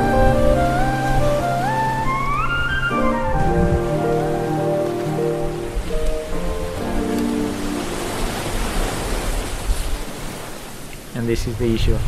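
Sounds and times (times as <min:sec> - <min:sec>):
background music: 0:00.0 - 0:08.9
small waves breaking on sand: 0:03.2 - 0:12.0.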